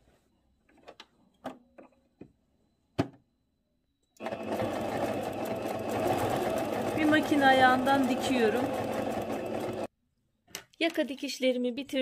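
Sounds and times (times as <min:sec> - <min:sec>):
sewing machine stitching: 0:04.2 - 0:09.9.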